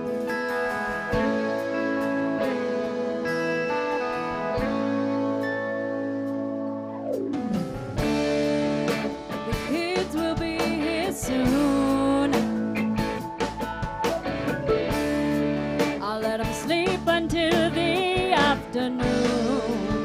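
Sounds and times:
live rock band playing: 0:00.0 - 0:20.0
person singing: 0:09.5 - 0:13.3, 0:16.0 - 0:20.0.

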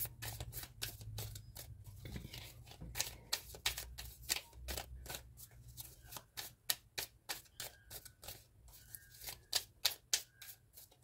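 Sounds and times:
cards being shuffled: 0:00.2 - 0:11.0.

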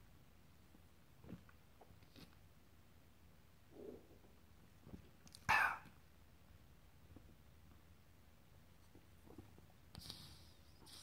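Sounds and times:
soft swallow: 0:05.4 - 0:06.0.

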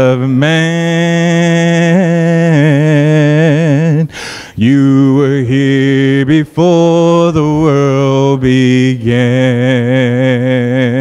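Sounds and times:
man singing a hymn a cappella: 0:00.0 - 0:11.0
singer breathing: 0:04.0 - 0:04.6.

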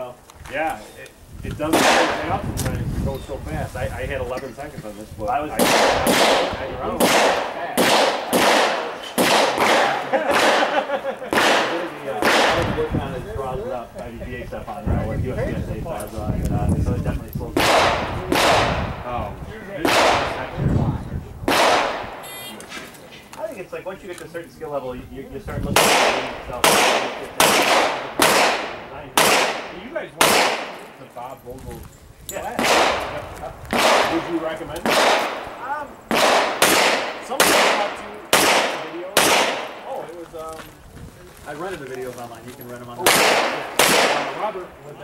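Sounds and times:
pistol shots with echo: 0:01.7 - 0:02.4, 0:05.6 - 0:12.9, 0:17.6 - 0:19.1, 0:19.8 - 0:20.6, 0:21.4 - 0:22.6, 0:25.8 - 0:31.0, 0:32.4 - 0:40.0, 0:43.0 - 0:44.6.

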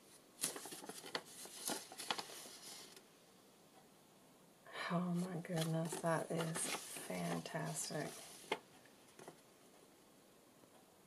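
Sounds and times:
paper rustling and crinkling: 0:00.1 - 0:03.0, 0:05.2 - 0:09.4.

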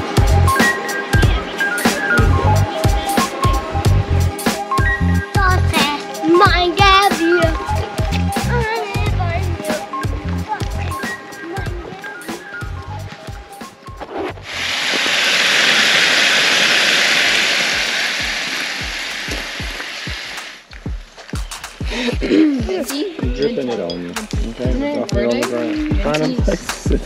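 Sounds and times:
background music with beat: 0:00.0 - 0:14.4, 0:18.2 - 0:27.0.

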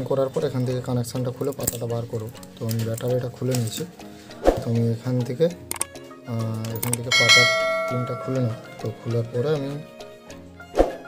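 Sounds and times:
background music: 0:00.0 - 0:10.8
bell-chime notification: 0:07.1 - 0:08.7.

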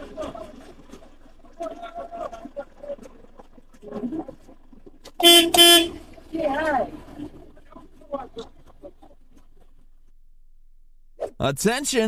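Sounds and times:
vehicle horn honks: 0:05.2 - 0:06.0.

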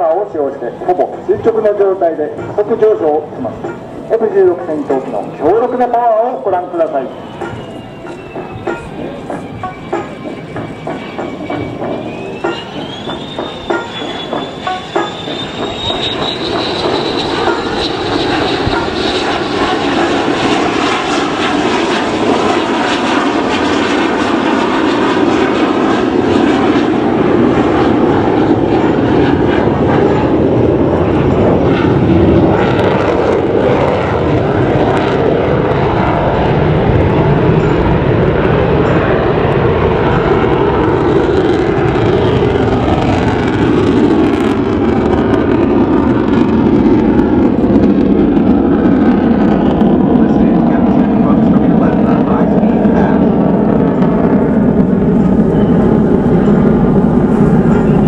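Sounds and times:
high whine rising in pitch: 0:00.0 - 0:58.0
jet engine noise: 0:00.0 - 0:58.0.

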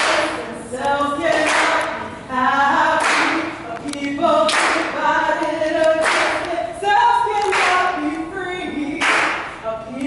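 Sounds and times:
group singing unaccompanied: 0:00.0 - 0:10.0.

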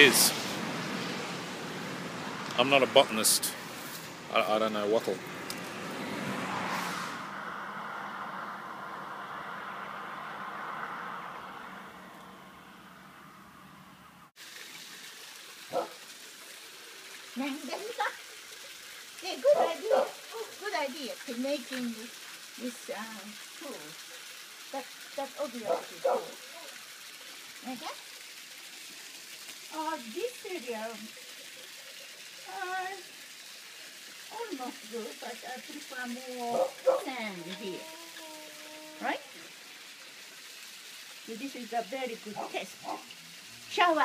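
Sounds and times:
garden hose spraying water: 0:00.0 - 0:12.2, 0:14.3 - 0:44.0
car driving past: 0:00.0 - 0:14.3.

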